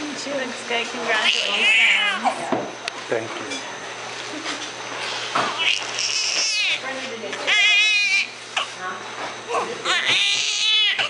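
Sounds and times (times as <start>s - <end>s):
newborn baby crying: 5.6s - 6.8s, 7.5s - 8.3s, 9.8s - 11.0s.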